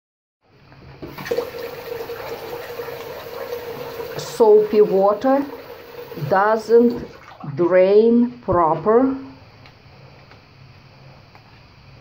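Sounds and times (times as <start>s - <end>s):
water running into a basin: 1.0s - 7.7s.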